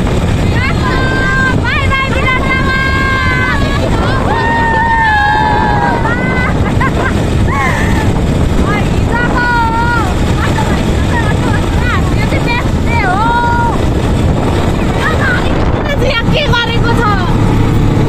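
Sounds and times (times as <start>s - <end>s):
auto-rickshaw engine rumble: 0.0s - 18.0s
wind buffeting microphone: 0.0s - 18.0s.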